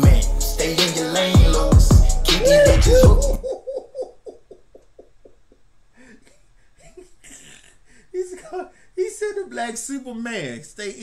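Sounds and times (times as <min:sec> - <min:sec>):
man laughing: 0:02.4 - 0:09.3.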